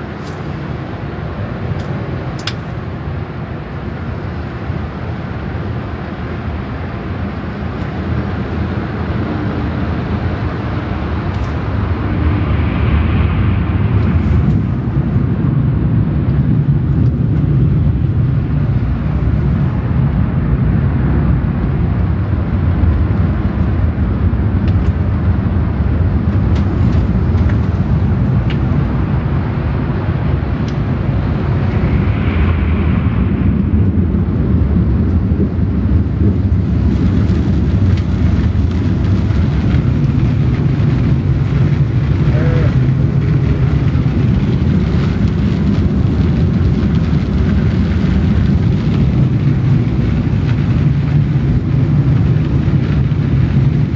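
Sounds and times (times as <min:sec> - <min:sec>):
car wash machinery roaring: 0:00.0 - 0:53.9.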